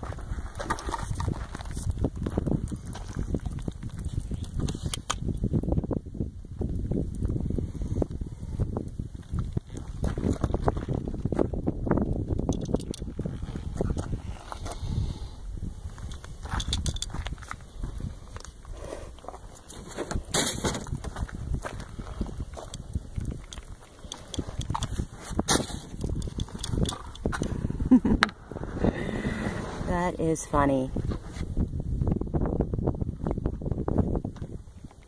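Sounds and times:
wind buffeting microphone: 0.0s - 35.0s.

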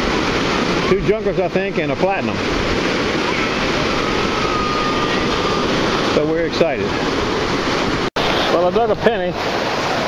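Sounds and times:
ocean surf breaking: 0.0s - 10.0s.

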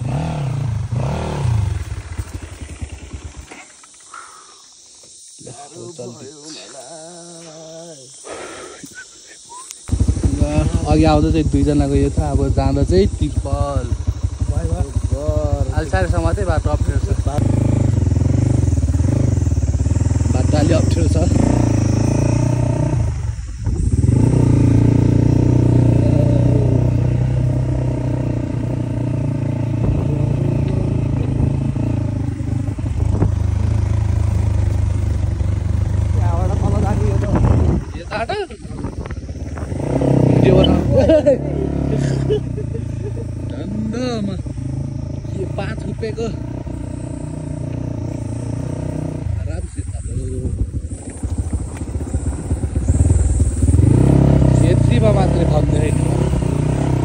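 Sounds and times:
vehicle engine rumbling: 0.0s - 57.0s
indistinct voices: 4.0s - 18.0s, 18.6s - 33.2s, 35.9s - 52.0s.

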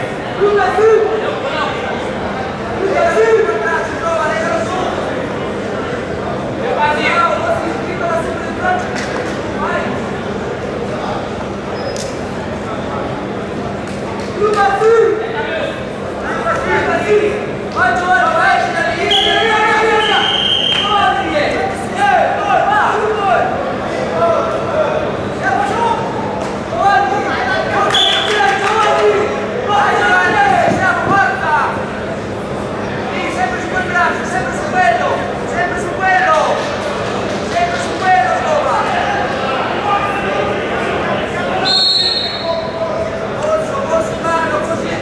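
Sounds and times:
people shouting in echoing hall: 16.2s - 23.8s
high whistle: 19.1s - 21.0s, 27.9s - 28.4s, 41.6s - 42.6s.

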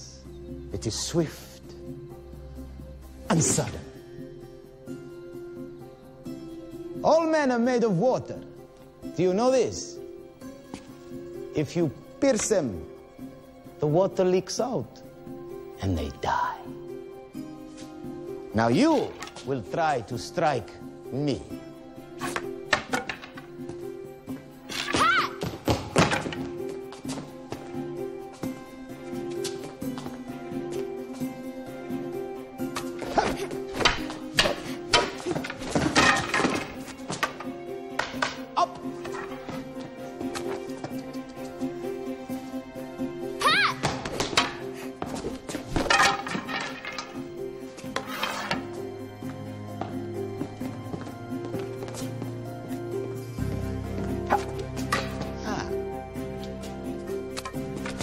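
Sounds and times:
orchestral music: 0.0s - 58.0s
practice swords knocking together: 22.2s - 23.9s, 24.7s - 27.3s, 32.6s - 41.3s, 43.8s - 48.8s, 54.1s - 55.4s.

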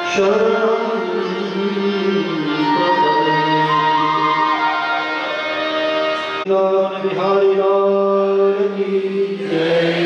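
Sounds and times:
man singing a chant: 6.5s - 10.0s.

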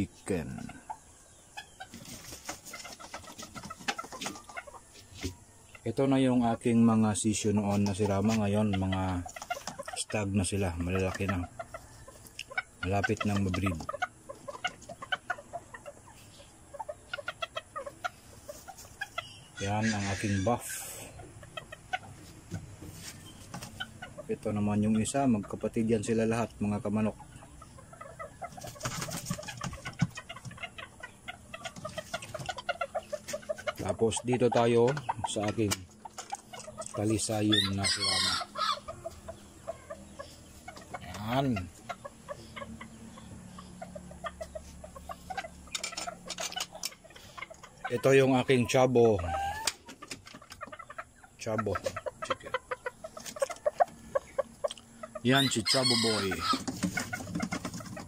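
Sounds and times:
chickens clucking: 0.0s - 58.0s.

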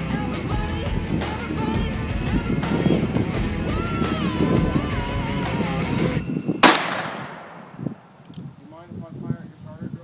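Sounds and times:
background music: 0.0s - 6.2s
revolver shot with echo: 6.6s - 8.2s.

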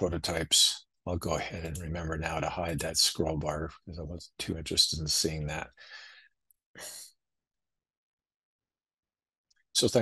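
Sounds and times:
man speaking: 0.0s - 6.0s, 9.8s - 10.0s.

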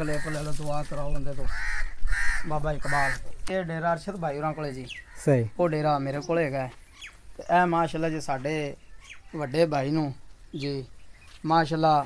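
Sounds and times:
crow cawing: 0.0s - 3.6s, 4.9s - 5.6s.

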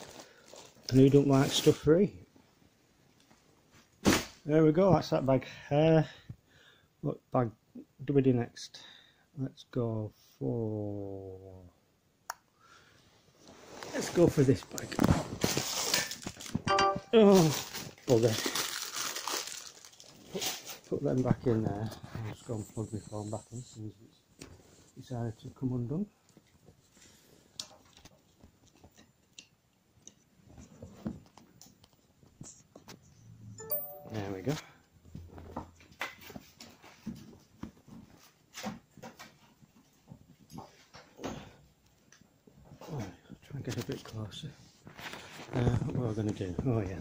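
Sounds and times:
plastic bag rustling: 0.0s - 1.8s, 13.8s - 21.2s
short beep tone: 33.4s - 34.4s.

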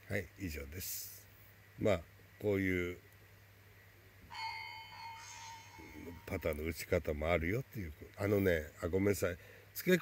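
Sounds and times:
bell-like chime ringing: 4.3s - 6.8s
higher chime note: 4.3s - 6.8s.

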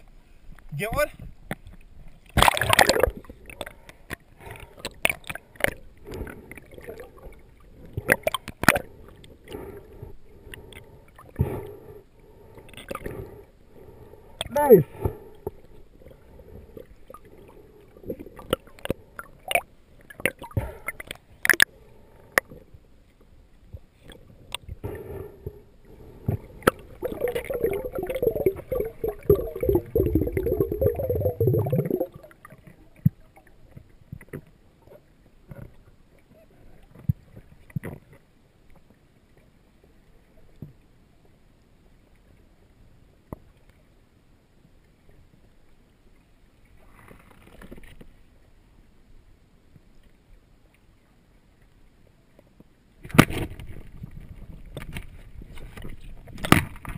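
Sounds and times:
sharp underwater clicks and knocks: 1.2s - 6.4s, 36.9s - 38.8s, 53.0s - 56.9s
loud bubbling gurgle: 2.4s - 3.2s, 26.9s - 32.3s
faint ticks: 18.1s - 24.8s.

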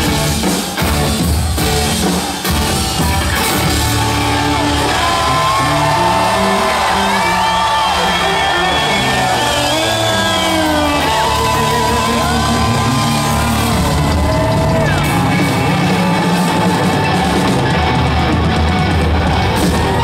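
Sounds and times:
live rock music: 0.0s - 20.0s
crowd shouting and whooping: 1.1s - 20.0s.

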